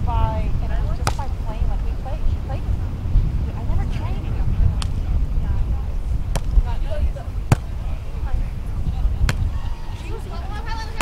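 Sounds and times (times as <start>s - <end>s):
wind rumble on microphone: 0.0s - 11.0s
volleyball smack: 1.0s - 1.3s, 6.3s - 6.6s, 7.5s - 7.8s.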